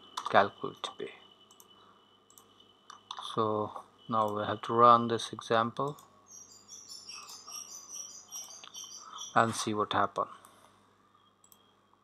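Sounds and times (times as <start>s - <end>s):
small animals chirping: 6.3s - 9.6s.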